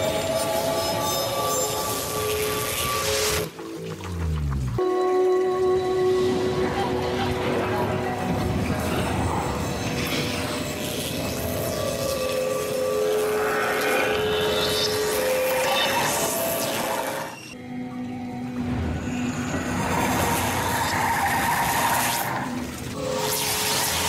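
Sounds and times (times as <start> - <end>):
dramatic music: 0.0 - 24.0.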